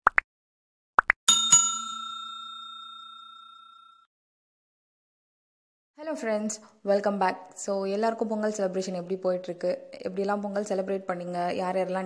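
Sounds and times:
bell-like chime: 1.3s - 4.1s.

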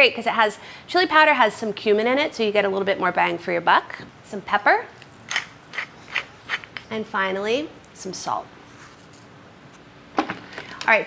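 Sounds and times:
pepper mill grinding: 5.0s - 7.0s.

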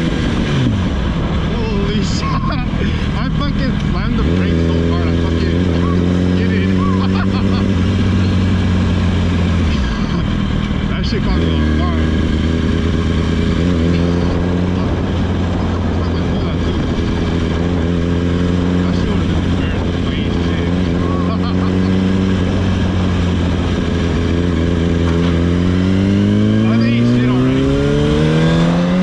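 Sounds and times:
motorcycle engine accelerating: 0.0s - 29.0s.

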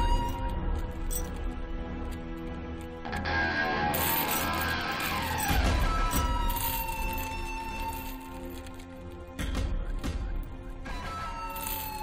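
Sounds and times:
film score held tones: 0.0s - 12.0s.

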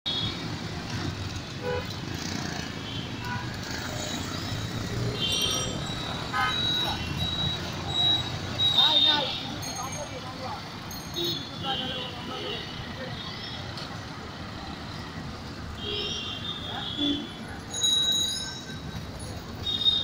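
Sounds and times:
traffic engines rumbling: 0.1s - 20.0s
vehicle horns tooting: 1.6s - 2.0s, 5.0s - 9.6s, 15.7s - 17.5s, 19.6s - 20.0s.

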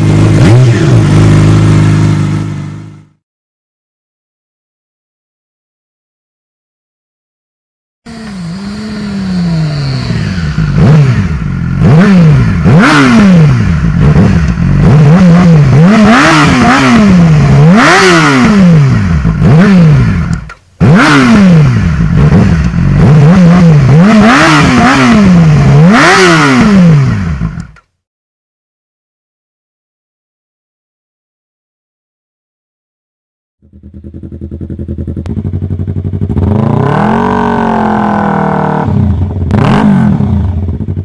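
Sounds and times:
motorcycle engine revving: 0.0s - 3.2s, 8.1s - 27.8s, 33.6s - 41.0s.

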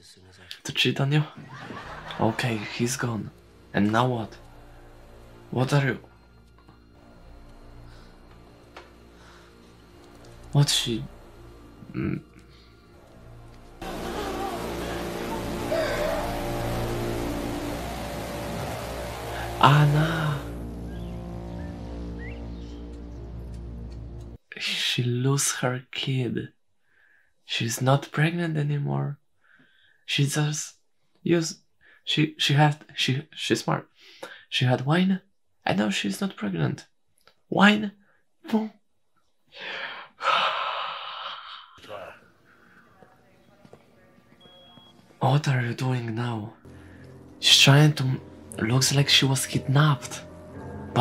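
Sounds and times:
film soundtrack drone: 1.4s - 24.4s, 45.4s - 51.0s
man screaming: 13.8s - 17.5s.

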